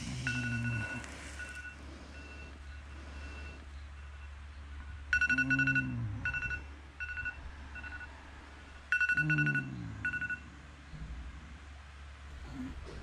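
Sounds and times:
electronic beeping: 0:00.0 - 0:08.2, 0:08.8 - 0:10.4
steady low hum: 0:00.0 - 0:13.0.

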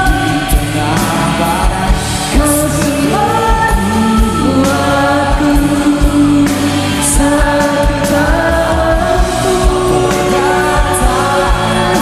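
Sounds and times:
band accompaniment: 0:00.0 - 0:12.0
low drum beats: 0:00.0 - 0:12.0
woman singing into a microphone: 0:00.0 - 0:12.0.

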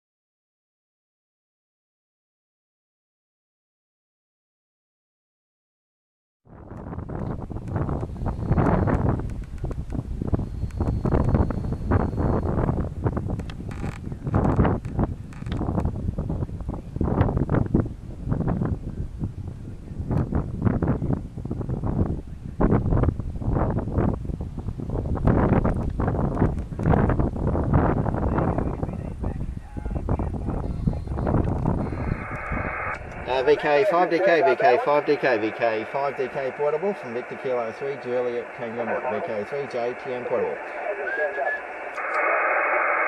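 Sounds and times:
wind buffeting microphone: 0:06.5 - 0:39.4.

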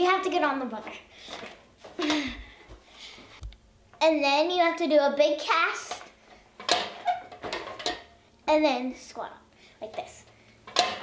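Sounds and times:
wooden bar knocking and rattling: 0:06.6 - 0:08.1, 0:10.7 - 0:11.0.

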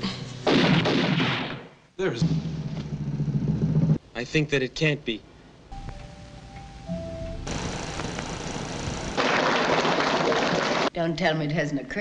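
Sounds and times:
steady hissing noise: 0:04.0 - 0:09.3
held musical tones: 0:05.7 - 0:09.0.

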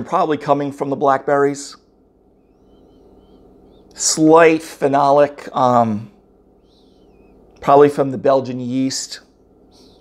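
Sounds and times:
low steady hum: 0:00.0 - 0:10.0
thin wavering chirps: 0:01.8 - 0:08.0, 0:09.0 - 0:10.0.

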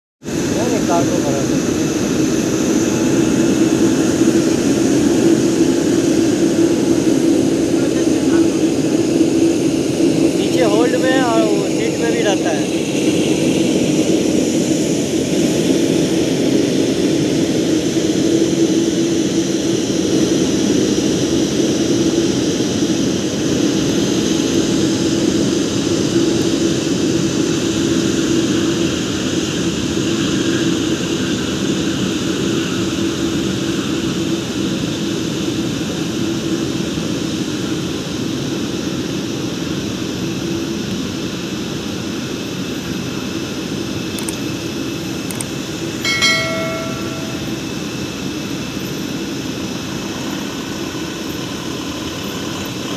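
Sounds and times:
jet engines whining: 0:00.3 - 0:19.4.

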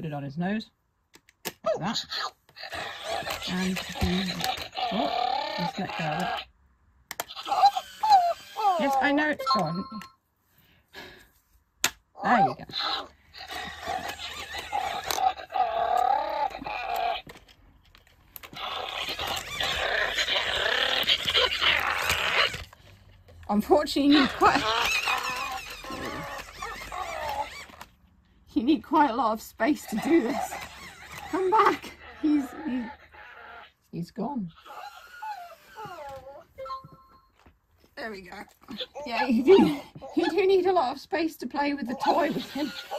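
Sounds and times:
electronic robot dog noises: 0:01.6 - 0:06.5, 0:07.2 - 0:09.6, 0:12.2 - 0:17.3, 0:18.5 - 0:22.7, 0:23.6 - 0:27.8, 0:29.0 - 0:33.8, 0:38.3 - 0:42.9.

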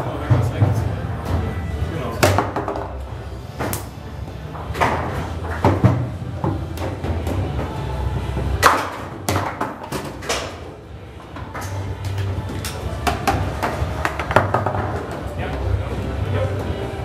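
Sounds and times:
foosball ball knocking: 0:02.2 - 0:03.9, 0:04.5 - 0:07.8, 0:08.6 - 0:10.7, 0:12.9 - 0:15.3.

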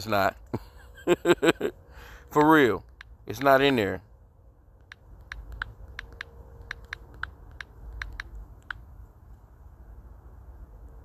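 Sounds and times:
touchscreen key clicks: 0:04.8 - 0:08.8.

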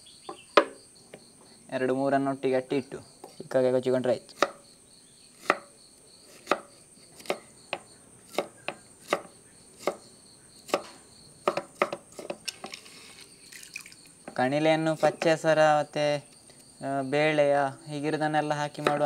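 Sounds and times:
knife chopping on wooden board: 0:04.4 - 0:04.6, 0:05.4 - 0:05.7, 0:06.3 - 0:10.1, 0:10.7 - 0:12.8, 0:18.8 - 0:19.0.

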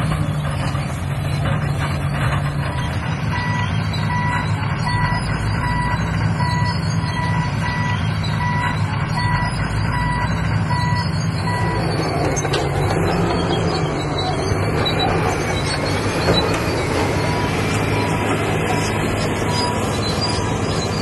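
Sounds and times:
heavy machinery engines droning: 0:00.0 - 0:21.0
reversing alarm beeping: 0:02.6 - 0:21.0.

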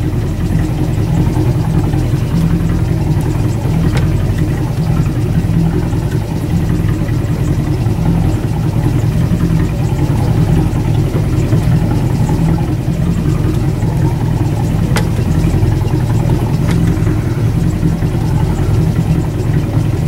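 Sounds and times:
boat engine running: 0:00.0 - 0:20.0.

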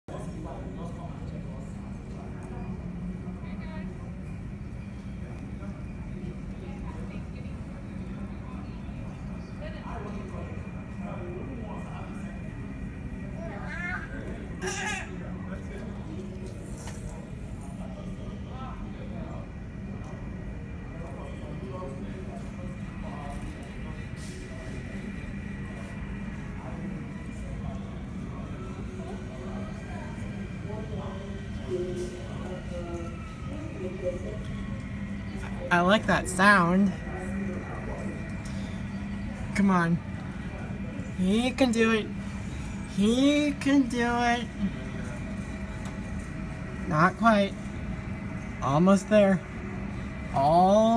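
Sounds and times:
steady low hum: 0:00.1 - 0:50.9
indistinct background voices: 0:00.2 - 0:50.9
faint whine: 0:15.2 - 0:50.9.

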